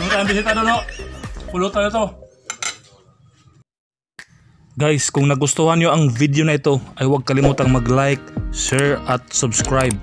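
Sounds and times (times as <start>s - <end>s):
cutlery clinking on a plate: 2.5s - 3.0s.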